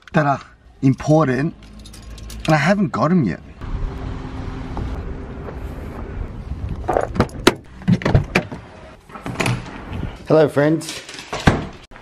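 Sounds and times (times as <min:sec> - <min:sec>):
keys jangling: 0:00.9 - 0:02.7
door being handled: 0:06.9 - 0:09.8, 0:11.0 - 0:11.9.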